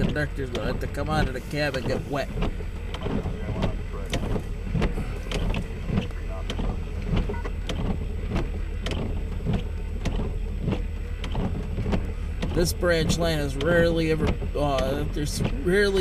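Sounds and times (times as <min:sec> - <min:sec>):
low hum inside vehicle: 0:00.0 - 0:16.0.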